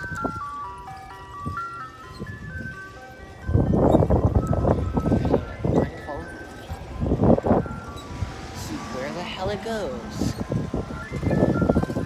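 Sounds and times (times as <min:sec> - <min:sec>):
ice cream truck jingle: 0:00.0 - 0:12.0
wind rumble on microphone: 0:00.0 - 0:12.0.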